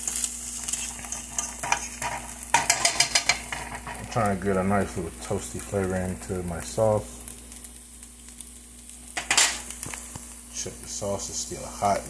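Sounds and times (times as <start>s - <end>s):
vegetables sizzling in a pan: 0.0s - 12.0s.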